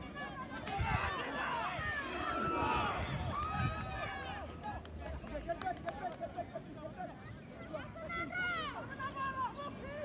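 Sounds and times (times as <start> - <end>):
people shouting and calling: 0.0 - 4.8.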